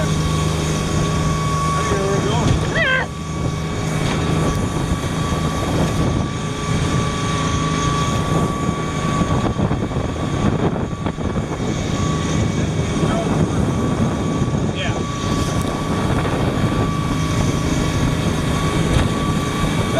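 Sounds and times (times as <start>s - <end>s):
motorboat engine drone: 0.0s - 19.9s.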